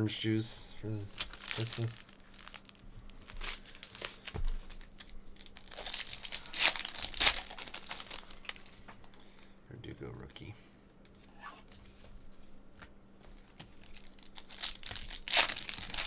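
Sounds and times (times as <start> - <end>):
foil wrapper crinkling and tearing: 0.9 - 9.0, 13.7 - 16.0.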